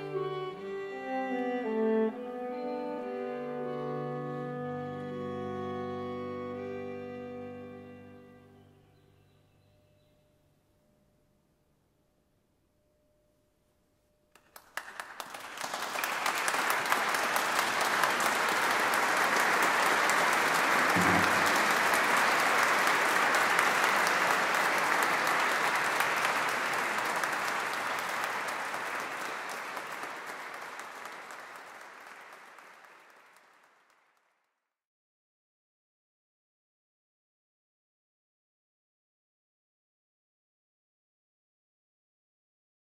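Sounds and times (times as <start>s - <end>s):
audience applause: 14.4s - 34.2s.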